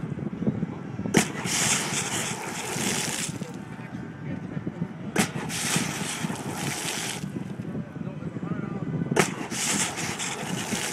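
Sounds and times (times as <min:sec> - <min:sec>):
fountain jets spraying: 0:01.2 - 0:03.6, 0:05.2 - 0:07.4, 0:09.2 - 0:10.9
fountain jet pop: 0:09.2 - 0:10.9.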